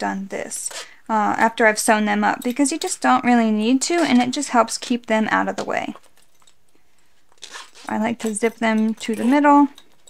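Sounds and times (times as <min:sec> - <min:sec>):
zipper rasping: 0:07.3 - 0:08.0.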